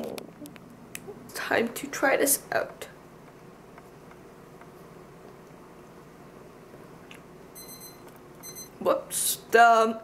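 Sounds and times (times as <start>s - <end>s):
high-pitched alarm beep: 7.6s - 8.7s.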